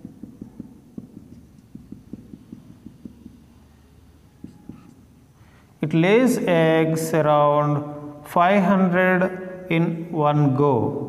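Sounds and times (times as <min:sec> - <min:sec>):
marker tapping on whiteboard: 0:00.0 - 0:05.4.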